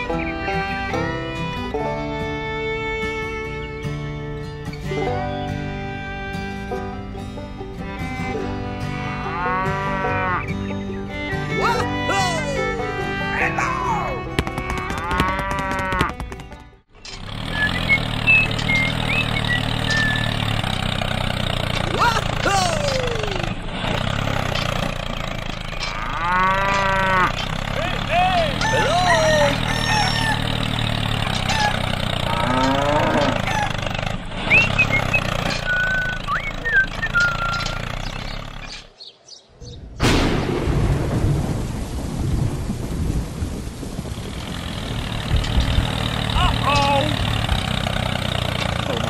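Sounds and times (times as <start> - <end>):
cow mooing: 8.9 - 10.6, 14.9 - 16.2, 25.8 - 33.8
bird chirps: 17.0 - 20.6, 34.4 - 40.0.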